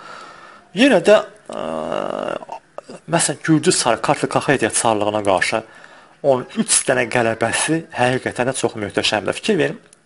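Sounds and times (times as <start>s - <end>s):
man speaking: 0.6s - 9.9s.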